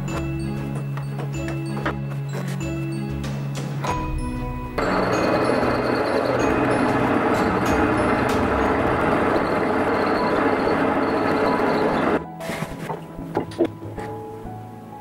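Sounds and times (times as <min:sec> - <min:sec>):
quiet background music: 0:00.0 - 0:15.0
metal lathe cutting: 0:04.8 - 0:12.2.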